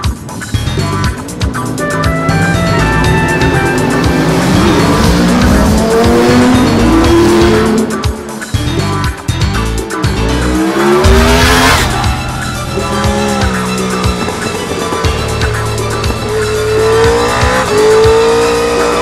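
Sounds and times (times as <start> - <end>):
motorcycle engines revving: 0.0 - 9.1, 9.9 - 19.0
background music: 0.0 - 19.0.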